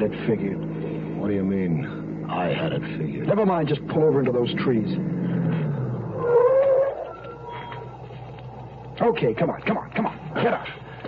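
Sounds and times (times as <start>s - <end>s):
brakes squealing: 0.0s - 11.0s
car engine slowing: 0.0s - 11.0s.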